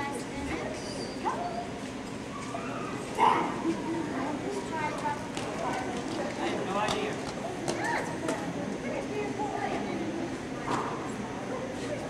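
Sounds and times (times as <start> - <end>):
murmur of voices in a hall: 0.0 - 12.0.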